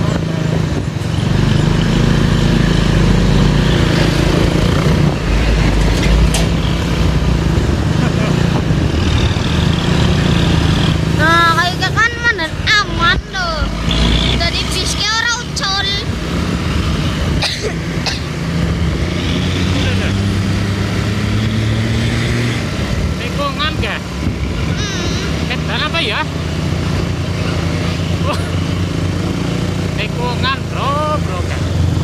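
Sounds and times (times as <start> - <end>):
road noise: 0.0 - 32.0
vehicle engine drone: 0.0 - 32.0
short voices: 24.8 - 25.5.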